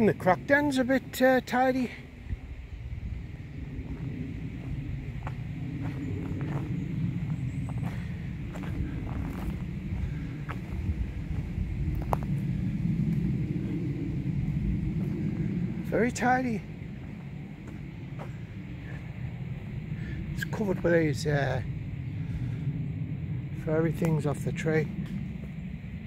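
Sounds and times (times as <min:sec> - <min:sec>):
low outdoor rumble: 0:00.0 - 0:26.0
footsteps on dirt path: 0:03.8 - 0:13.8, 0:14.9 - 0:15.3, 0:17.0 - 0:19.2.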